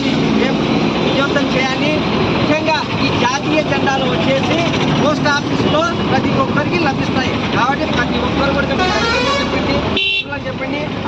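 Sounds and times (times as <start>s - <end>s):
people talking: 0.0s - 11.0s
steady traffic noise: 0.0s - 11.0s.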